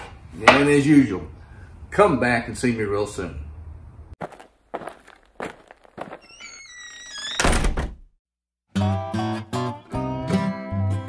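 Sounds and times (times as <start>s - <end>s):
acoustic guitar music: 8.7s - 11.0s.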